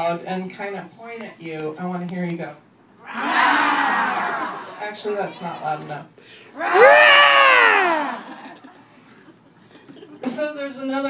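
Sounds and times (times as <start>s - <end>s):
person imitating a monster roar: 6.8s - 8.1s.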